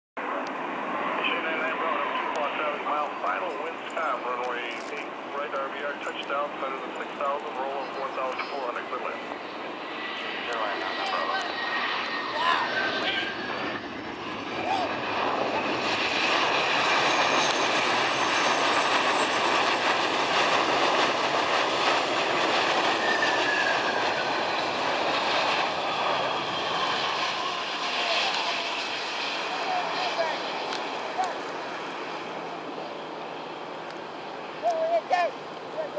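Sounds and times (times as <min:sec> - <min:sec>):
jet engine whine falling in pitch: 0:00.2 - 0:35.9
jet engines in reverse thrust: 0:00.2 - 0:35.9.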